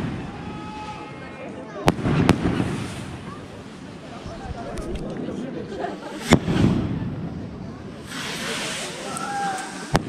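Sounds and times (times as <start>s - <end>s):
firework bang: 1.8s - 3.4s, 6.2s - 10.0s.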